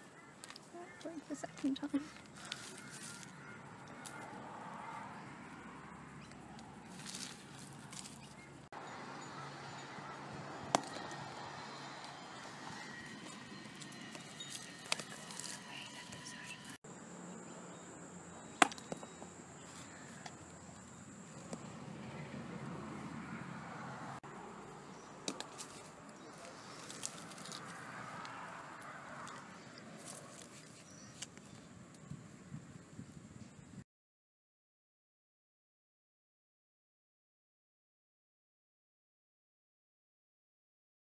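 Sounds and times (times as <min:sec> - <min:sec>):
outdoor background noise: 0:00.0 - 0:33.8
mud bricks hitting concrete: 0:18.6 - 0:19.1.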